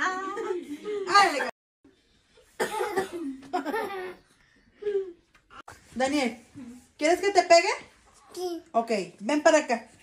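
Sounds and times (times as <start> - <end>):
small child giggling: 2.7 - 4.3.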